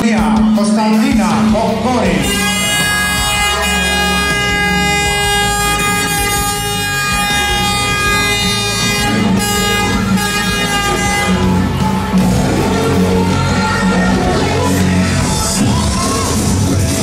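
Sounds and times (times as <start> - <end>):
loud music over sound system: 0.0 - 17.0.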